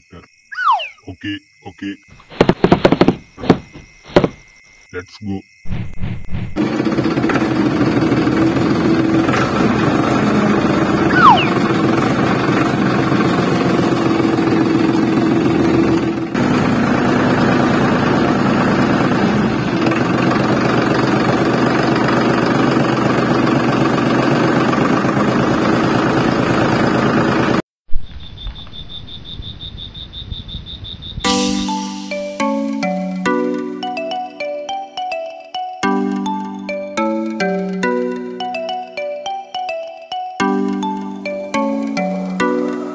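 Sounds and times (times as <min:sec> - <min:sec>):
faint high tone: 0:00.5 - 0:01.3, 0:11.1 - 0:11.6
tractor engine chugging: 0:06.6 - 0:27.6.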